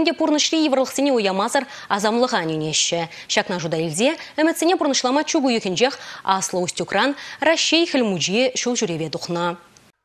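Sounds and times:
woman speaking: 0:00.0 - 0:09.7.

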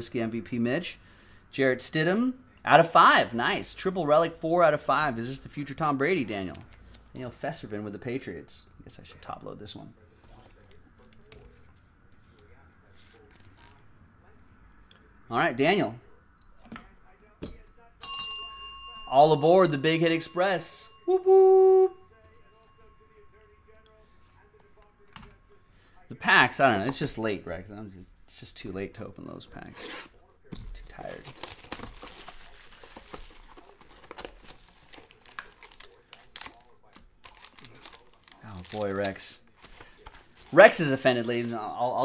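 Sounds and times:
service bell ringing: 0:18.0 - 0:23.8
plastic wrap crinkling and tearing: 0:30.9 - 0:41.7.

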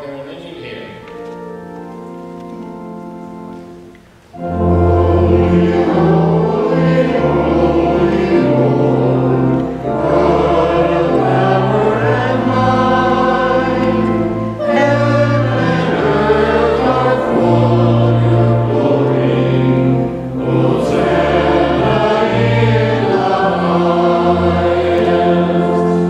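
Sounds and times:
organ accompaniment: 0:00.0 - 0:26.0
group of voices singing: 0:04.4 - 0:26.0.

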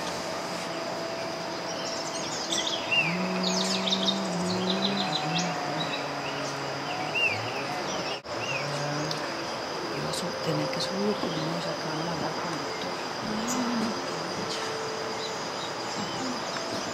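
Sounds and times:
birds chirping: 0:00.0 - 0:16.9
high-pitched insect buzz: 0:00.0 - 0:16.9
low hum: 0:00.0 - 0:16.9.

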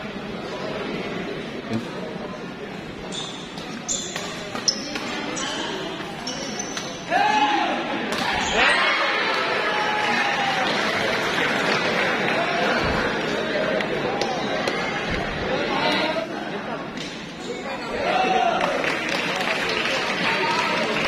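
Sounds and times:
shoe squeaks: 0:03.0 - 0:07.1
shouts and cheering: 0:07.1 - 0:11.1.

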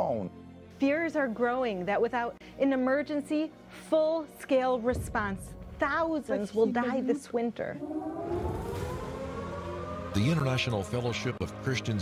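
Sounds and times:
low rumble: 0:07.8 - 0:11.0
air-raid siren rising in pitch: 0:07.8 - 0:11.9.

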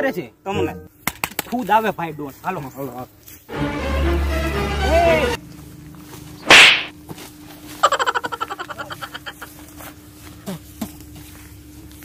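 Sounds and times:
sharp smack hit effect: 0:06.5 - 0:07.0.

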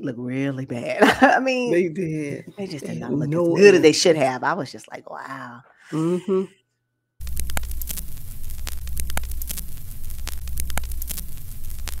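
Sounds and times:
low hum: 0:07.2 - 0:12.0
sharp clicks: 0:07.2 - 0:12.0
static crackling: 0:07.2 - 0:12.0.

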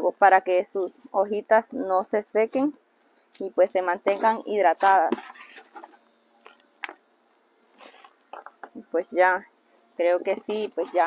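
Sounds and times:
woman speaking: 0:00.0 - 0:02.8, 0:03.4 - 0:05.3, 0:08.6 - 0:11.0.

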